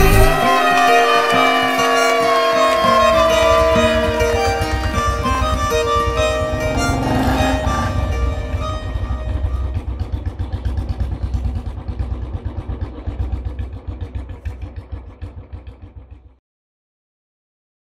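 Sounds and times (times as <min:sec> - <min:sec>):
melodic background music: 0:00.0 - 0:10.2
low rumble: 0:01.9 - 0:16.4.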